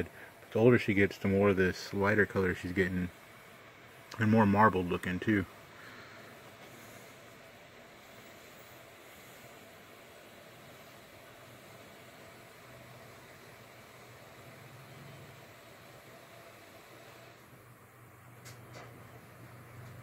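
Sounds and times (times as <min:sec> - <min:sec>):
faint steady hiss: 0:00.0 - 0:20.0.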